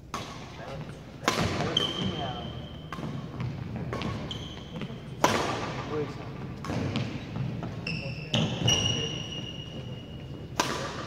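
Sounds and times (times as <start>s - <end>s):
racket hitting shuttlecock: 0.0s - 9.8s, 10.4s - 11.0s
shoe squeaks on gym floor: 1.5s - 5.2s, 6.9s - 10.6s.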